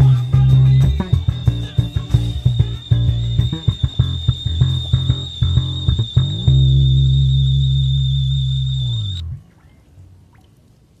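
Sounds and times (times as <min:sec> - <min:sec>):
thin high tone: 0:00.0 - 0:09.4
electric bass low note: 0:00.0 - 0:09.5.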